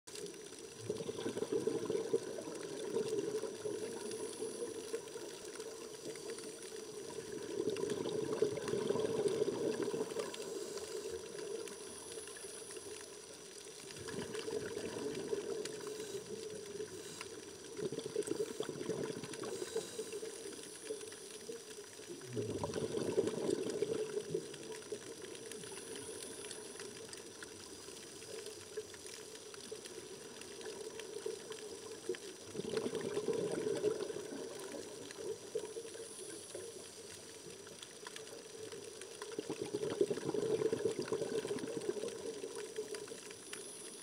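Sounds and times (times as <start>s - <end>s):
diver's regulator bubbles gurgling: 0.1s - 44.0s.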